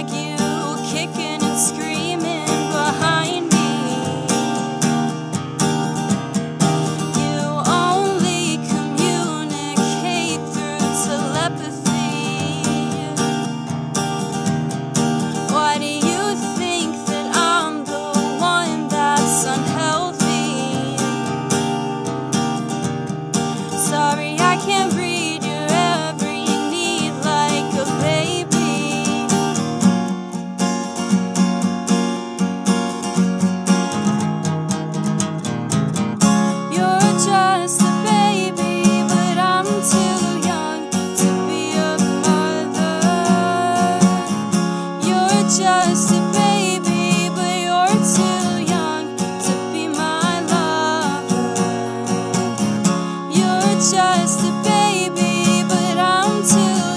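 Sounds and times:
woman singing: 0.0s - 5.1s, 6.7s - 13.6s, 15.2s - 21.7s, 23.7s - 29.6s, 36.6s - 56.9s
acoustic guitar strumming: 0.0s - 56.9s.

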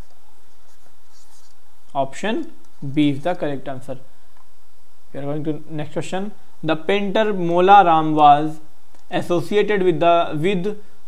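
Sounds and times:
stylus scratching on tablet: 0.0s - 1.6s
steady low hum: 0.0s - 11.0s.

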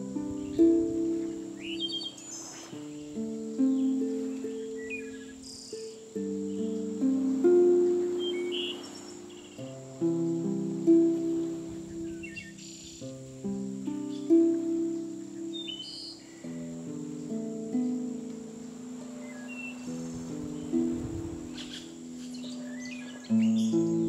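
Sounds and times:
birds chirping: 0.0s - 24.0s
high insect-like trill: 0.0s - 24.0s
slow harp music: 0.0s - 24.0s.

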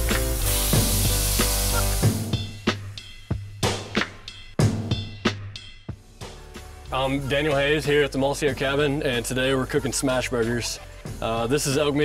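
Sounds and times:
meat sizzling on griddle: 0.0s - 2.6s
music with drum beat: 0.0s - 12.0s.

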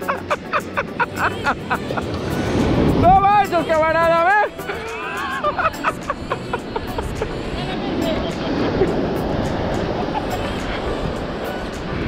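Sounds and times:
distant music: 0.0s - 12.0s
surf breaking on beach: 0.0s - 12.0s.

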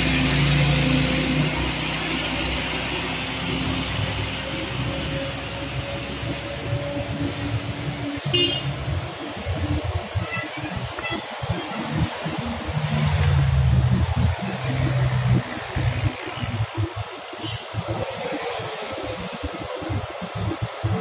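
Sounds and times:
passing traffic: 0.0s - 21.0s.

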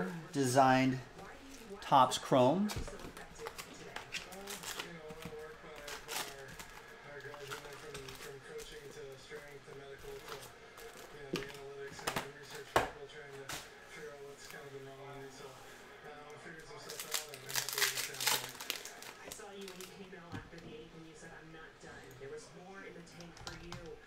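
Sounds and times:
foil packs crinkling: 3.3s - 11.7s, 16.8s - 20.0s.

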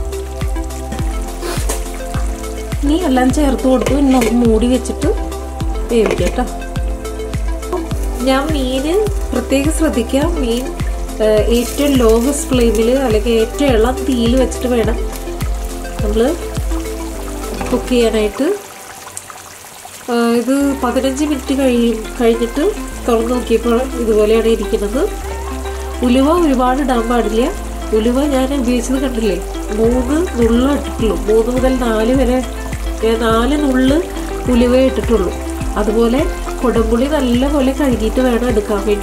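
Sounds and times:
background music with stepping bass: 0.0s - 18.3s, 20.7s - 39.0s
curry bubbling and sizzling in pan: 0.0s - 39.0s.

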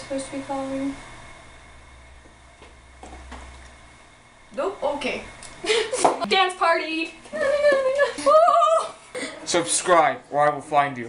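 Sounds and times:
low hum: 0.0s - 9.4s.

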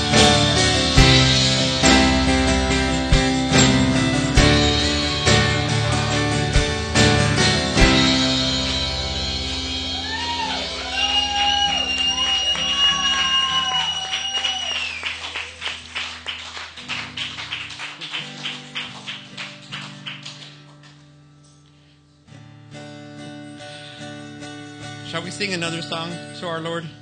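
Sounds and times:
strummed acoustic guitar: 0.0s - 14.0s, 15.1s - 27.0s.

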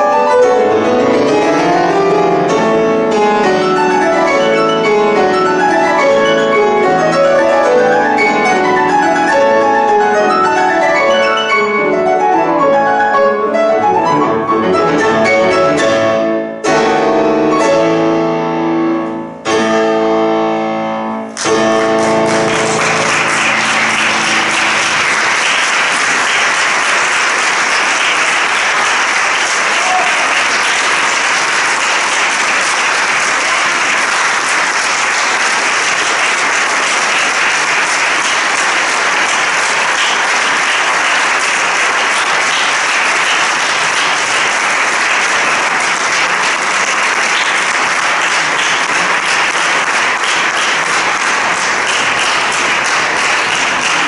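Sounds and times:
piano chord ringing: 0.0s - 25.3s
audience applauding: 21.4s - 54.0s.

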